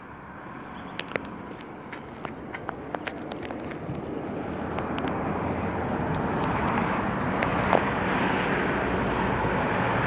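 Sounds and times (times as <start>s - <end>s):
vehicle approaching: 0.0s - 10.0s.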